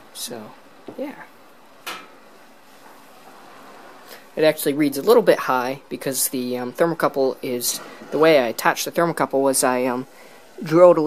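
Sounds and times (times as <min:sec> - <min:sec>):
water hissing as it heats: 0:00.0 - 0:11.0.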